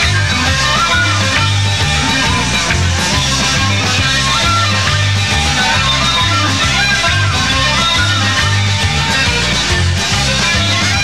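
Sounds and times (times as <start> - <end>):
bass line: 0.0 - 11.0
guitars: 0.0 - 11.0
punk band playing live: 0.0 - 11.0.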